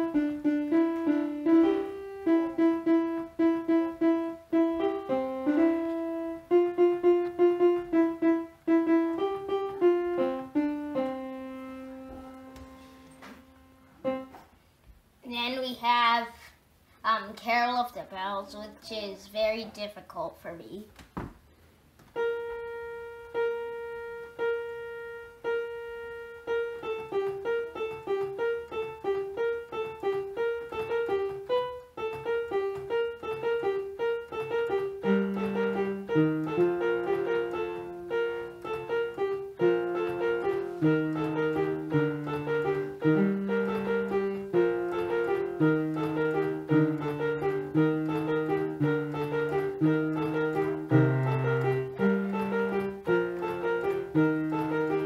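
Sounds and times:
electronic keyboard piano melody: 0.0s - 14.6s, 21.9s - 55.0s.

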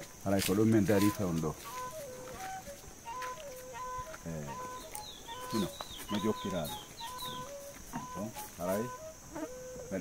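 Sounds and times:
whistled notes: 0.8s - 10.0s.

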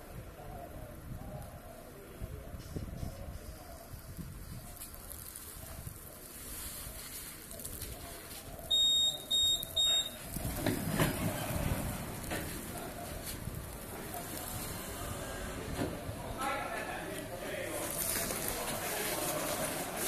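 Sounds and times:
short high-pitched electronic beeps: 8.7s - 10.2s.

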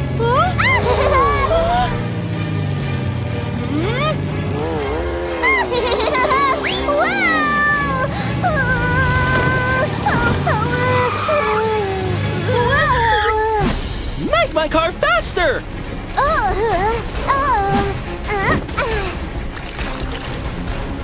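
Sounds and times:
go-kart engine: 0.0s - 13.6s
background music: 0.0s - 21.0s.

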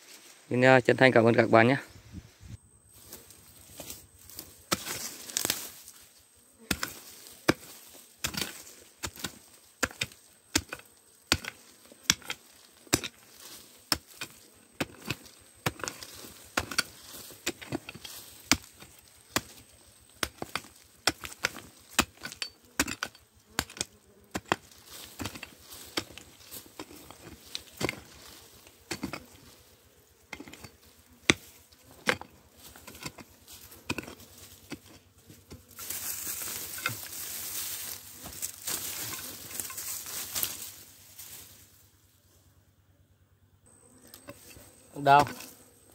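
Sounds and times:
hoe chopping into stony soil: 3.7s - 6.0s, 6.6s - 29.5s, 30.3s - 41.3s, 44.2s - 45.6s.

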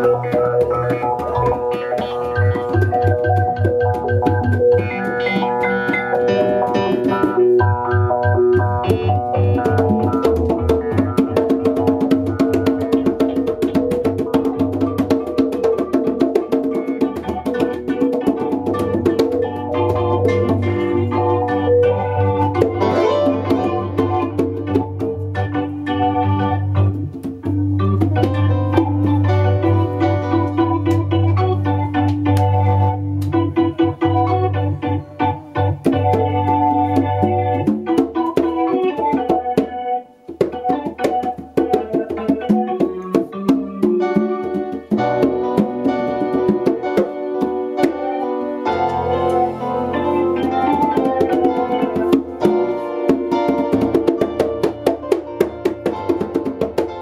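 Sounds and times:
congas hand-drummed: 0.0s - 57.0s.

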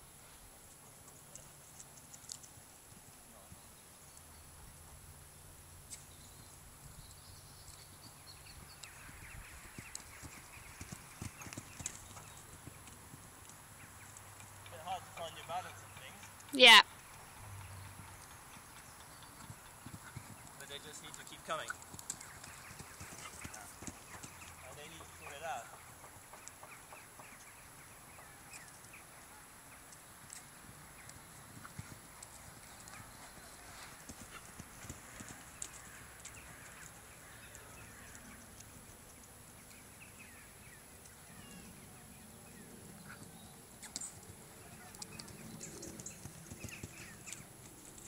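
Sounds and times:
horse hoofbeats on sand: 8.0s - 16.3s, 17.1s - 27.6s, 30.6s - 36.8s, 44.9s - 48.0s.

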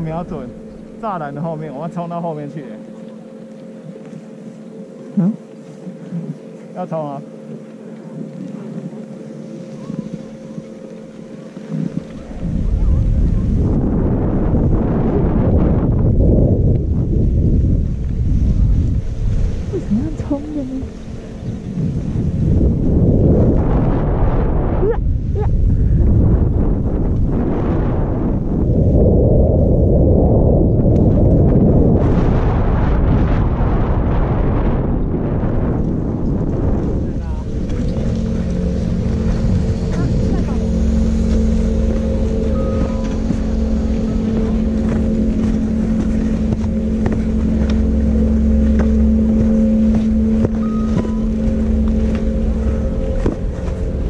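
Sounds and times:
mechanical hum with low drone: 0.0s - 54.0s
wind buffeting microphone: 0.0s - 54.0s
skis sliding over snow: 5.0s - 13.7s.

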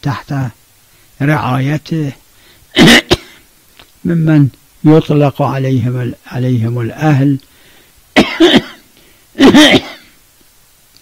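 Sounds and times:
man coughing harshly: 2.7s - 3.5s, 8.2s - 10.2s.

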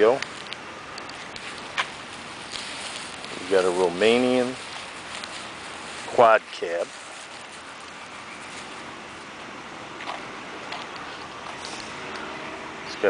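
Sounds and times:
footsteps on pavement: 0.0s - 12.4s
outdoor background noise: 0.0s - 13.0s.

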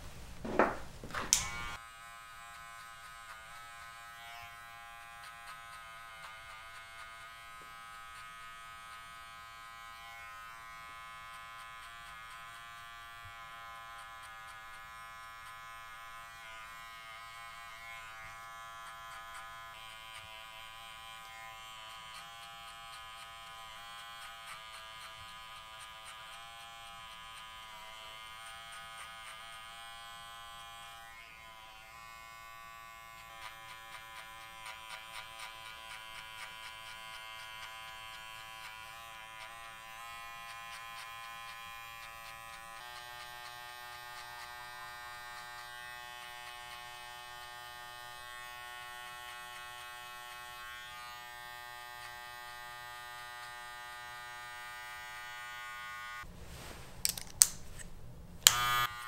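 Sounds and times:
electric hair clipper buzzing: 1.1s - 56.3s, 58.4s - 59.0s.

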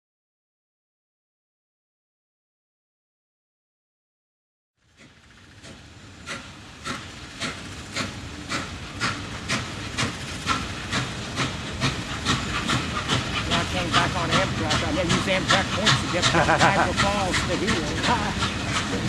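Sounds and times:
steady steam hiss: 4.8s - 19.0s
steam locomotive exhaust chuffs: 4.8s - 19.0s.

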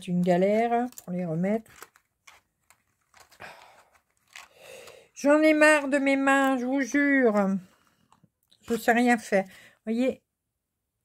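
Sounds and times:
plastic scraping and rustling: 0.0s - 8.8s.

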